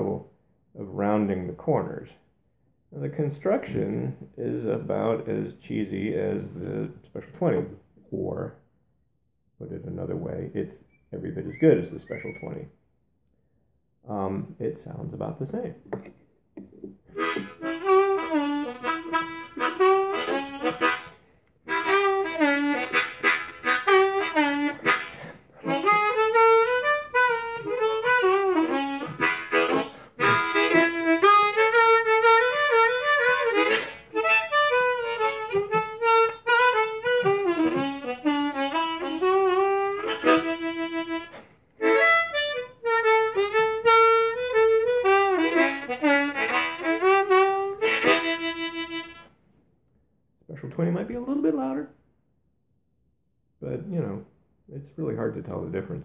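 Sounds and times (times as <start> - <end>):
harmonica playing bluesy phrases: 10.9 - 12.6, 17.1 - 49.4.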